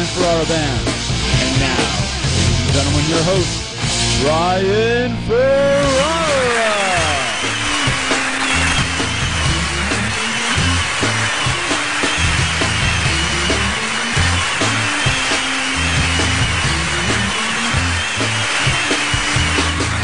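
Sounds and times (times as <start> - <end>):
bass riff: 0.0 - 20.0
rock band theme music: 0.0 - 20.0.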